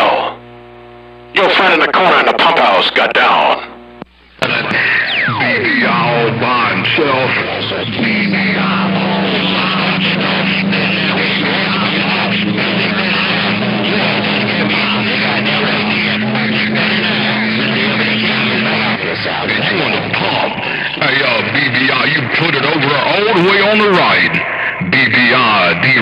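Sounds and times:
radio hiss: 0:00.0 - 0:26.0
steady low radio hum: 0:00.0 - 0:26.0.

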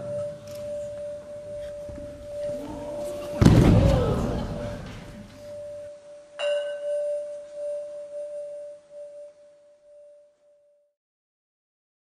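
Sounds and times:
metallic bell tone ringing: 0:04.5 - 0:10.3.

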